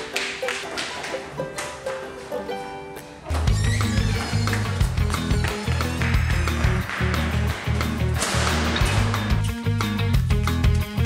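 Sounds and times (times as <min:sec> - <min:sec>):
plucked-string music: 0:00.0 - 0:11.0
bass-heavy music with steady beat: 0:04.6 - 0:11.0.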